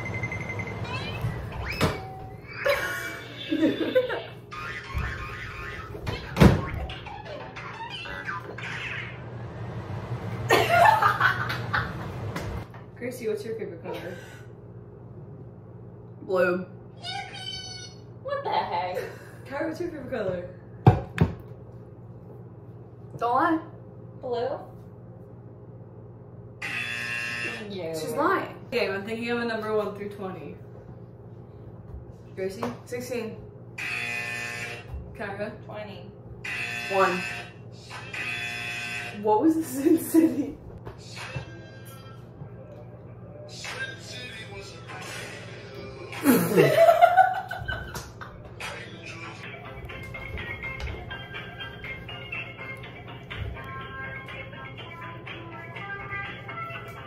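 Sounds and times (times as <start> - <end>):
young woman laughing: 2.5 - 4.5, 10.5 - 12.0, 18.3 - 19.4, 46.2 - 48.0
electronic buzzer: 26.6 - 27.7, 33.8 - 34.9, 36.4 - 39.3.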